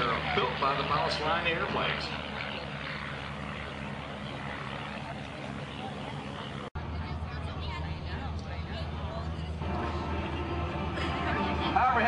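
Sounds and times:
propeller aircraft engine drone: 0.0s - 12.0s.

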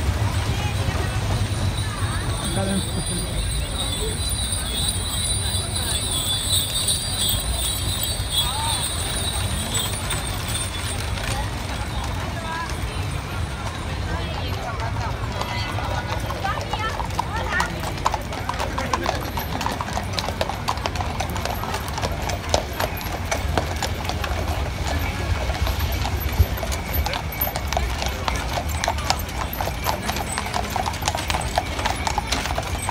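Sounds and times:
crowd chatter: 0.0s - 32.9s
hooves clip-clopping on pavement: 0.0s - 32.9s.

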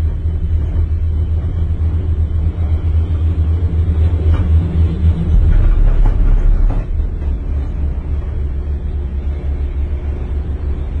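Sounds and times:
gondola cabin rumble: 0.0s - 11.0s.

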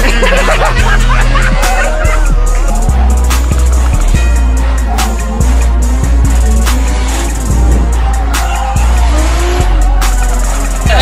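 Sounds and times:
car engines running: 0.0s - 11.0s
hip-hop track with heavy bass: 0.0s - 11.0s
tyres squealing: 0.0s - 11.0s.

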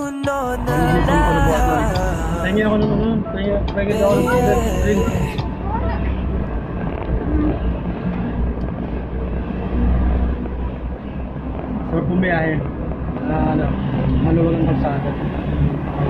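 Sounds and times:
brief voices: 0.0s - 2.9s, 3.9s - 5.5s.

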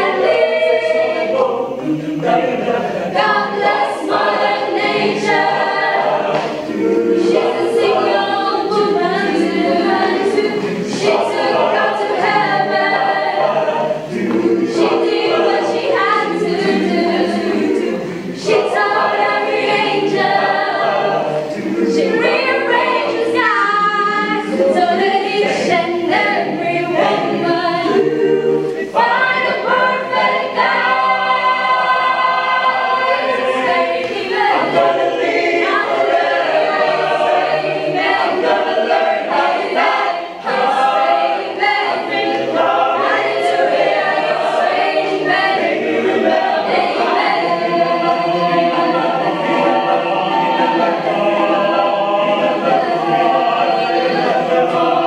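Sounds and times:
choir singing a cappella: 0.0s - 55.0s.

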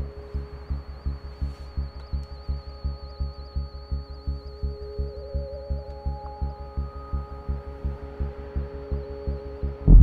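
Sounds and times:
low pulse: 0.0s - 10.0s
sustained drone tones: 0.0s - 10.0s.

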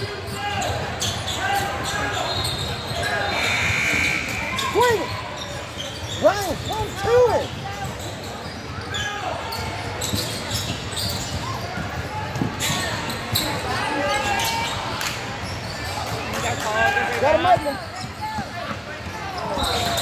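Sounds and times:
sneakers squeaking on court: 0.0s - 16.6s, 17.3s - 20.0s
spectators talking: 0.0s - 20.0s.

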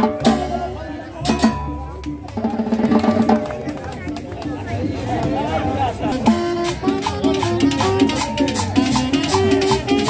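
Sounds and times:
snare and conga drums: 0.0s - 10.0s.

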